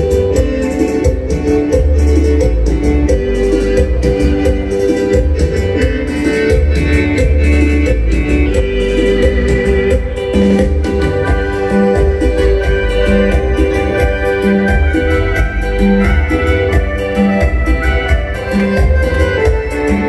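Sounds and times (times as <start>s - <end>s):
keyboard band dance music: 0.0s - 20.0s.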